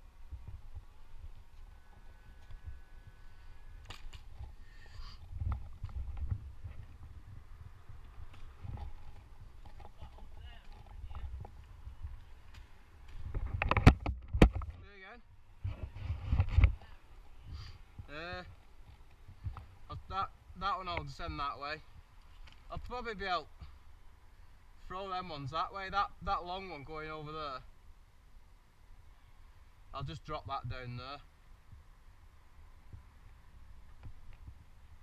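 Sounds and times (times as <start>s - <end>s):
handling noise rumble and rustling: 3.8s - 23.9s.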